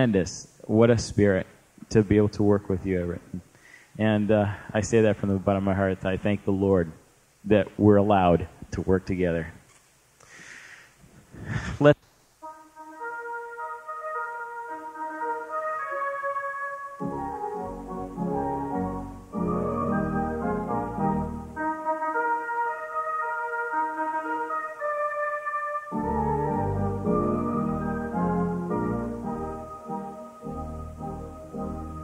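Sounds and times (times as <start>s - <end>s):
church organ chords: 12.4s - 32.0s
deep organ pedal bass: 17.0s - 24.5s, 25.9s - 32.0s.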